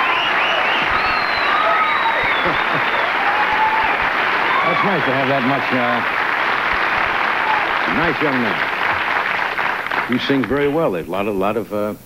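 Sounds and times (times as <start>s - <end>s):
audience applauding: 0.0s - 10.9s.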